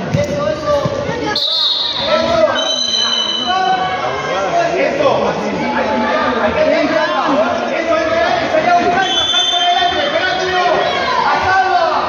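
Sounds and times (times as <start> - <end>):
sharp whistle blast: 1.4 - 3.6, 9.0 - 9.9.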